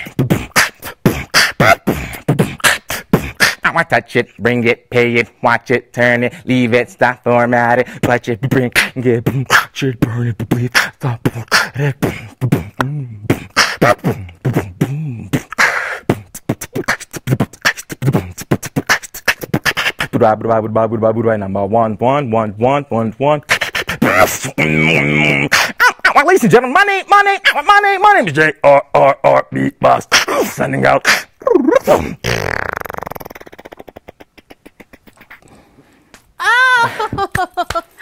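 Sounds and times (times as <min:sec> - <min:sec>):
person beatboxing into a microphone: 0:00.0 - 0:21.2, 0:21.8 - 0:26.5, 0:28.7 - 0:36.2.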